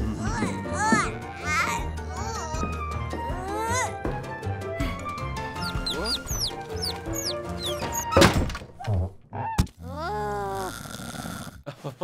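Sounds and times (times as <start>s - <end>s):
background music: 0.0s - 9.4s
loud thunk: 7.8s - 8.8s.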